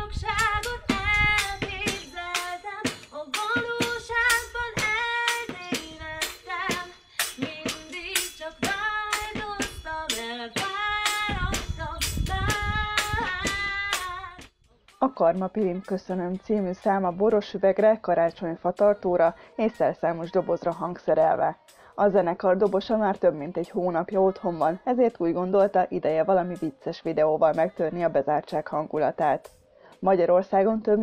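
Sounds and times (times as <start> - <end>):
woman singing pop song: 0.0 - 31.0
clicking improvised percussion: 0.6 - 15.1
deep drum hits: 8.6 - 14.4.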